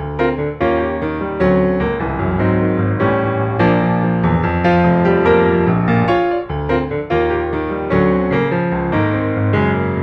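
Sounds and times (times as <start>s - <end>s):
piano melody over chords: 0.0s - 10.0s.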